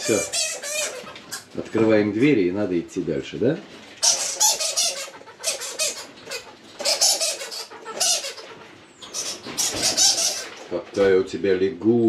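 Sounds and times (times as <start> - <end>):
monkey squeaking: 0.0 - 1.5, 4.0 - 10.6.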